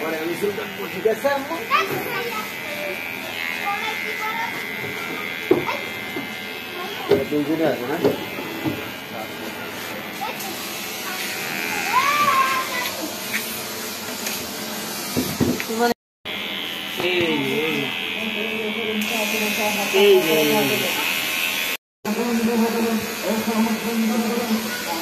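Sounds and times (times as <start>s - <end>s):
electric hair clipper buzzing: 0.0s - 25.0s.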